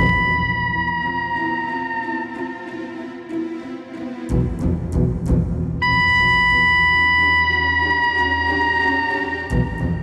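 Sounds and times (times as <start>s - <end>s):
high note sinking in pitch: 0.0s - 3.1s, 5.8s - 10.0s
low drone: 0.0s - 3.5s.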